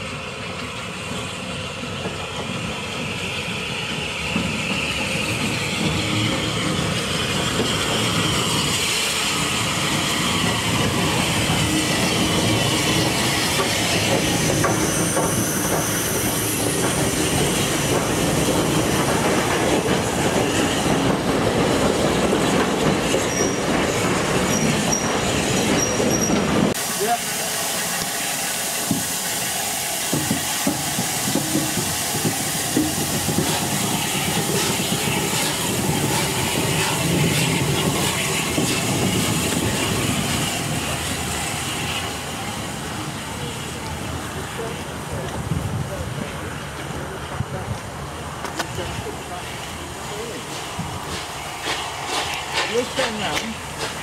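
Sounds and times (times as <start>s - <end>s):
steam hissing: 0.0s - 45.2s, 48.8s - 54.0s
steam train rumbling: 0.0s - 54.0s
wheels clattering on rail joints: 10.1s - 26.8s, 44.6s - 54.0s
wheel squeal: 23.1s - 26.6s.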